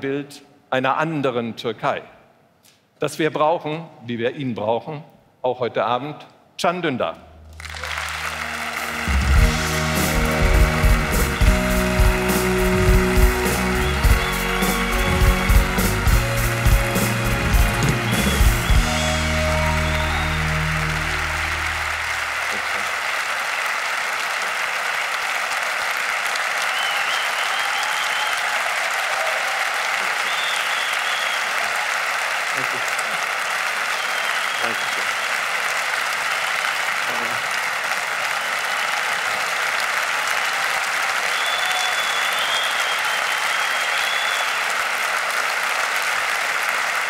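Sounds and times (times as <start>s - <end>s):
large audience applauding: 7.5s - 47.0s
walk-on music with pounding beat: 8.9s - 21.6s.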